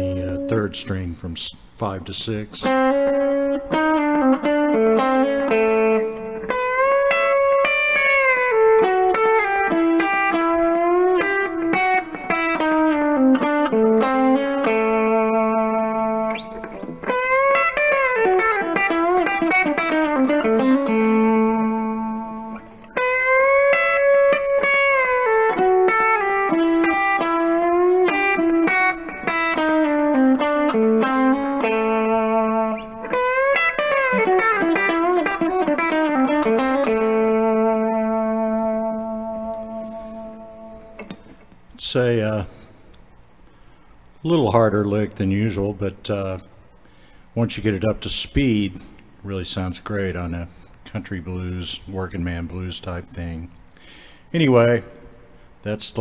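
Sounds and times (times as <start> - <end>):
electric guitar country lick: 0.0 - 51.9.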